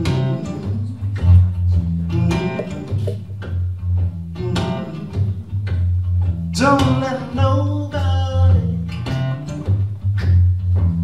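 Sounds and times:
acoustic guitar strumming: 0:00.0 - 0:07.6.

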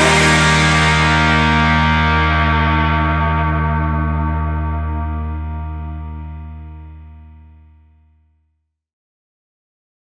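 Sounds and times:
distorted electric guitar chord: 0:00.0 - 0:08.0.

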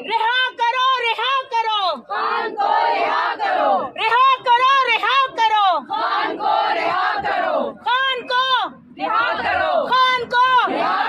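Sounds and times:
women chanting protest slogans: 0:00.0 - 0:11.0.

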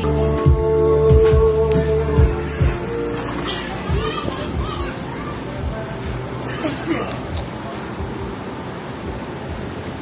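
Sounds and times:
background music: 0:00.0 - 0:08.4
outdoor noise: 0:00.0 - 0:10.0
children's voices and calls: 0:02.4 - 0:07.3.

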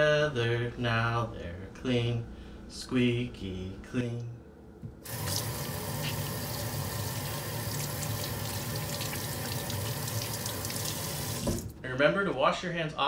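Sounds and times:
water running into a sink: 0:05.0 - 0:11.7.

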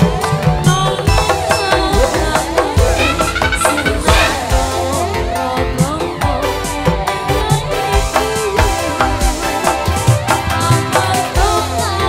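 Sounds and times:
hand drum beat: 0:00.0 - 0:04.9
keyboard melody: 0:00.0 - 0:12.0.

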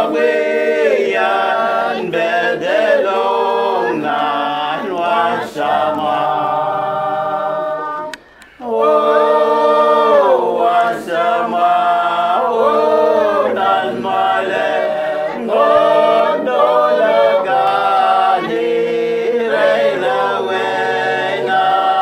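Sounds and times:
group singing unaccompanied: 0:00.0 - 0:22.0.

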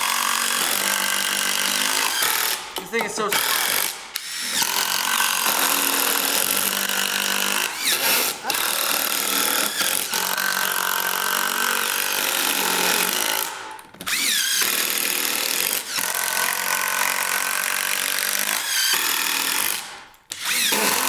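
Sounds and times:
impact drivers driving screws: 0:00.0 - 0:21.0.

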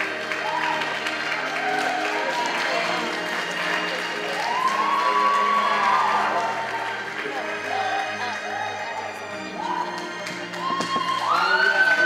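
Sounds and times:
cheering: 0:00.0 - 0:08.2, 0:09.4 - 0:12.0
audience applauding: 0:00.0 - 0:12.0
music playing: 0:00.0 - 0:12.0.

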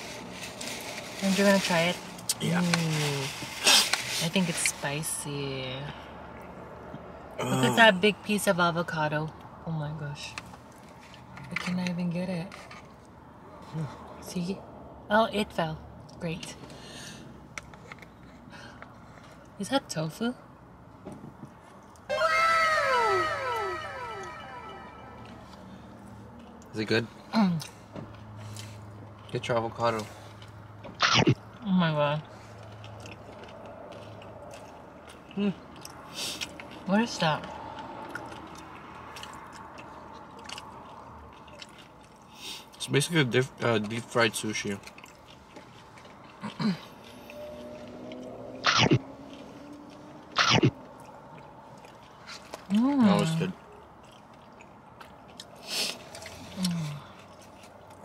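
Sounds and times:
echoing meow sound effect: 0:22.1 - 0:25.3
loud eating mouth noises: 0:31.0 - 0:31.5, 0:48.6 - 0:49.4, 0:50.3 - 0:52.4.

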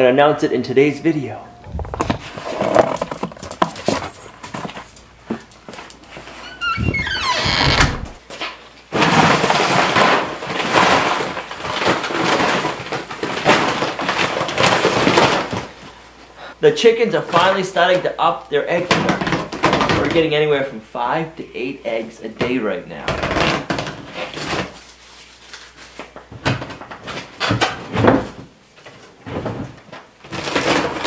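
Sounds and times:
short falling squeak: 0:06.4 - 0:08.2.

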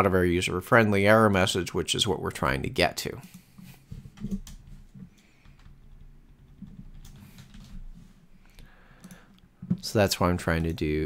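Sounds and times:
computer keyboard and mouse clicks: 0:04.0 - 0:07.9, 0:08.5 - 0:09.9.

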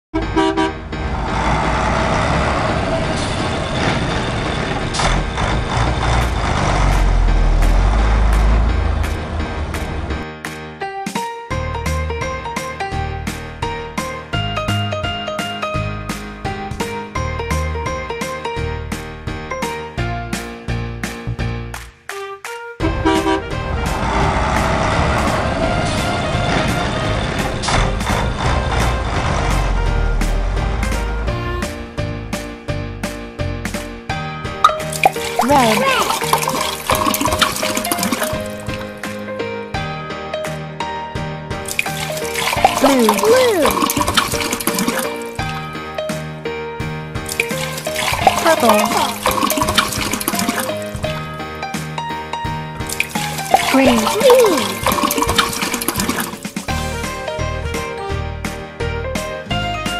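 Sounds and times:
vehicle horn toots: 0:00.2 - 0:00.9, 0:22.8 - 0:23.6
truck engine running: 0:00.2 - 0:10.2, 0:23.8 - 0:32.1.

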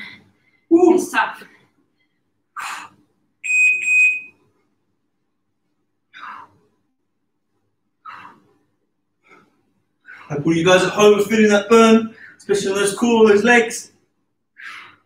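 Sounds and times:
high-pitched electronic beep: 0:03.4 - 0:04.3
people exhaling: 0:14.6 - 0:15.0.

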